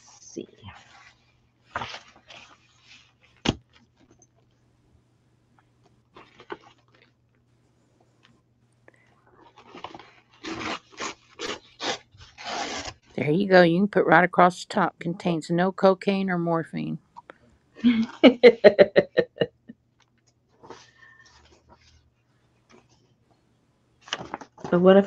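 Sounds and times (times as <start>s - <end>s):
paper being handled: 0.0s - 4.2s
paper ripping: 9.4s - 13.1s.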